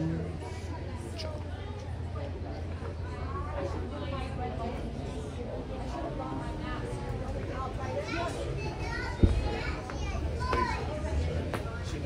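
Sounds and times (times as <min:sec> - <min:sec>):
people chatting: 0:00.0 - 0:12.0
children's voices: 0:07.5 - 0:11.4.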